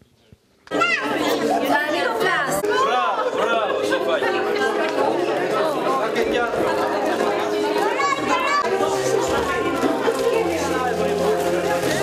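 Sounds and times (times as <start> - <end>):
children chattering: 0.7 - 12.0.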